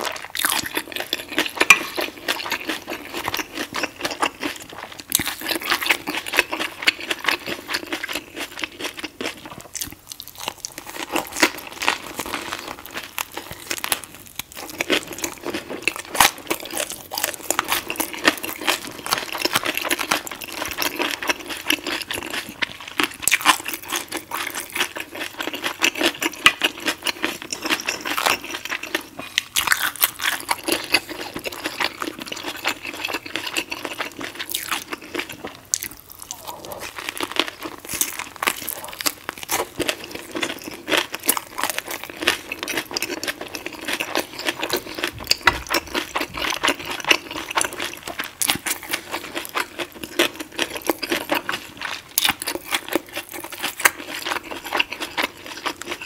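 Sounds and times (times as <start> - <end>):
chewing and crunching food: 0.0 - 56.0.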